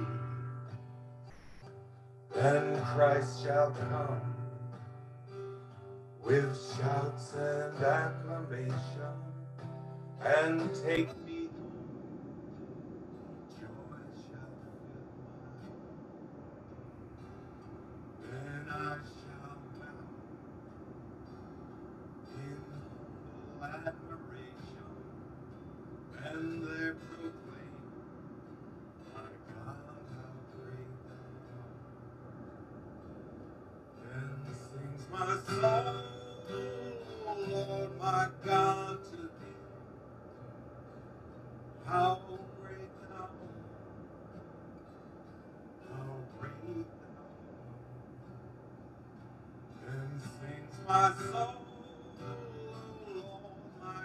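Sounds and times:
acoustic guitar strumming: 0:00.0 - 0:11.8, 0:16.7 - 0:54.0
man singing: 0:02.3 - 0:04.4, 0:06.2 - 0:09.4, 0:10.2 - 0:11.5, 0:18.2 - 0:20.0, 0:22.3 - 0:25.0, 0:26.2 - 0:27.8, 0:29.1 - 0:31.3, 0:34.0 - 0:39.7, 0:41.8 - 0:43.5, 0:45.9 - 0:47.0, 0:49.8 - 0:54.0
man's voice: 0:02.4 - 0:04.4, 0:06.2 - 0:09.3, 0:10.2 - 0:11.6, 0:13.5 - 0:15.0, 0:18.3 - 0:20.0, 0:22.3 - 0:22.9, 0:23.6 - 0:25.0, 0:26.2 - 0:27.8, 0:34.0 - 0:39.6, 0:41.8 - 0:43.5, 0:49.8 - 0:54.0.

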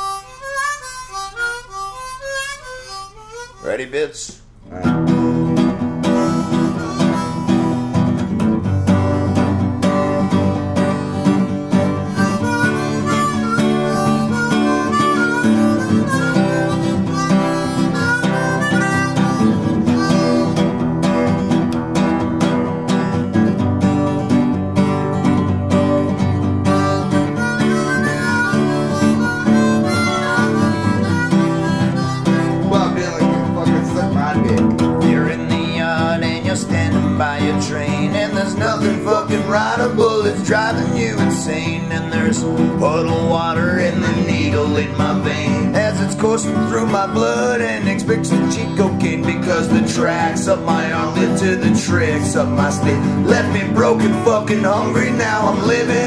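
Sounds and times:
acoustic guitar strumming: 0:00.0 - 0:56.0
harmonica playing: 0:00.0 - 0:56.0.

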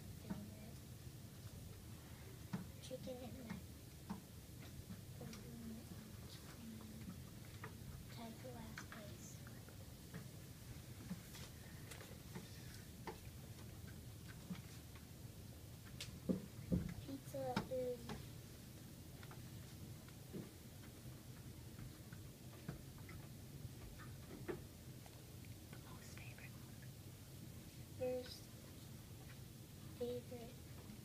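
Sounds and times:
room hum: 0:00.0 - 0:31.0
faint whispering: 0:25.8 - 0:26.9.

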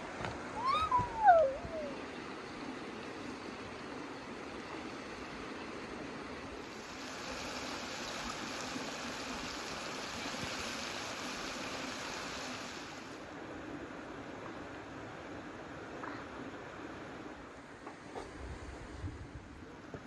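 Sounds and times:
flowing stream water: 0:00.0 - 0:17.5
short wavering call: 0:00.6 - 0:02.0.

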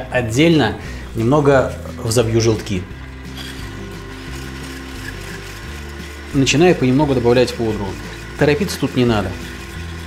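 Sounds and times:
background music: 0:00.0 - 0:10.0
electric hand blender whisking: 0:01.0 - 0:10.0.

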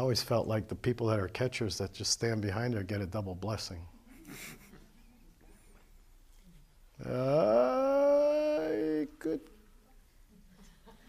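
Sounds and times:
person holding long uhh: 0:07.0 - 0:09.5.

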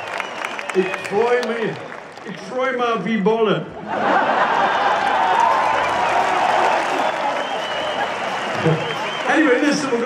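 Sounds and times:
crowd cheering: 0:00.0 - 0:02.4, 0:03.8 - 0:10.0
crowd clapping: 0:00.0 - 0:02.6, 0:04.4 - 0:10.0.

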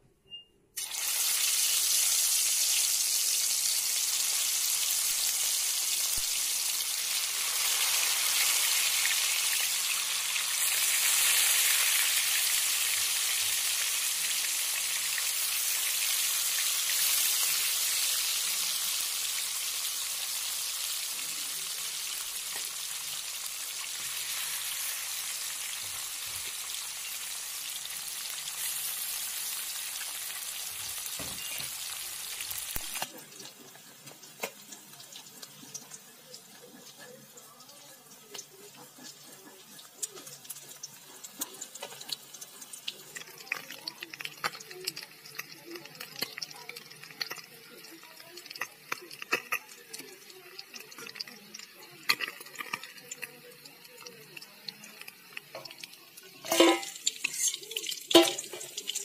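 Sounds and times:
fish sizzling in hot oil: 0:00.8 - 0:59.0.

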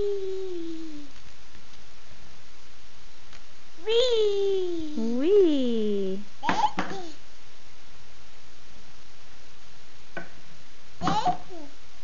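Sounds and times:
toddler vocalizing: 0:11.0 - 0:11.7.

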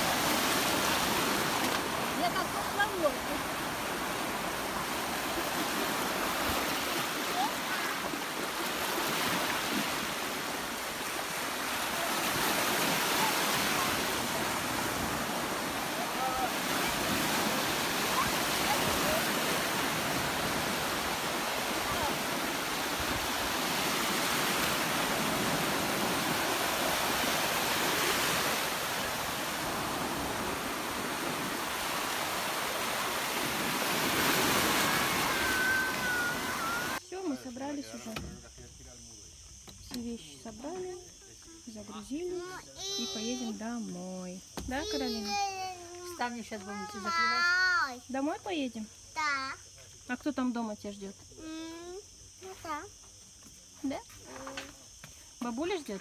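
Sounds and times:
sea surf breaking on shore: 0:00.0 - 0:37.0.

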